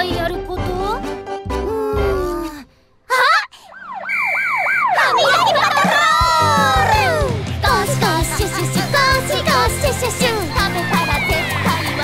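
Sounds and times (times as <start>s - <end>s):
cartoon police siren wailing: 3.4s - 7.4s
bright children's music: 5.2s - 12.0s.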